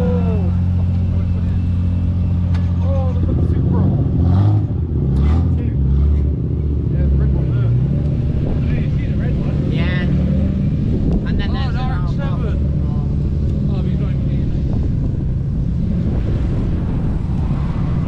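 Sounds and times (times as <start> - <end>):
people's voices: 0.0 - 4.2, 6.8 - 10.2, 11.1 - 15.0
car engine pulling away: 0.0 - 18.0.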